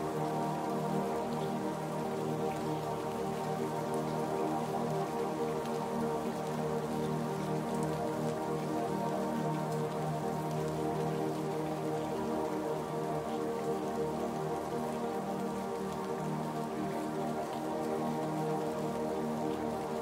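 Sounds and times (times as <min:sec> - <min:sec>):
ambient music with held chords: 0:00.0 - 0:20.0
rain pattering: 0:00.0 - 0:20.0.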